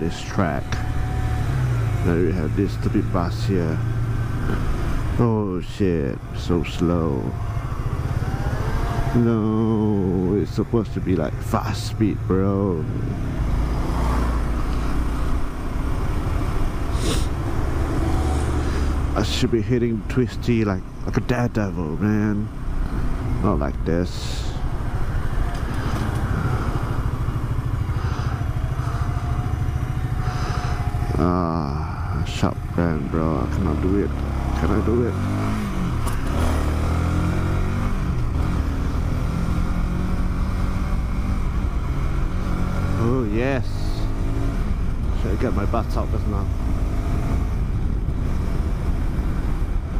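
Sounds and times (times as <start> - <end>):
motorcycle engine at low revs: 0.0 - 49.9
road and wind noise: 0.0 - 49.9.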